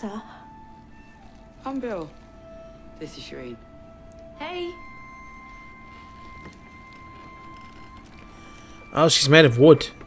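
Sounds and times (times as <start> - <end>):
quiet background music high note: 0.0 - 10.0.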